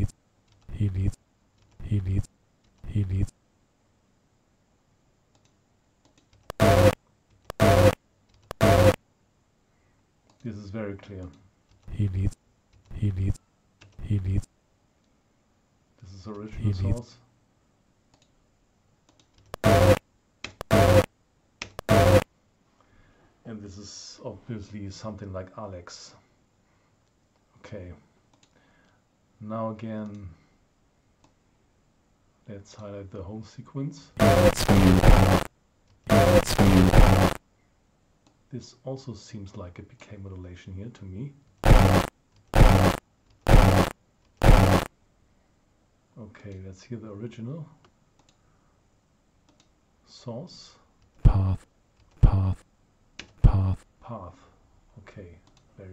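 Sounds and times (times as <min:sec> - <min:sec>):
burst of hiss and buzz: 0:41.6 - 0:44.9.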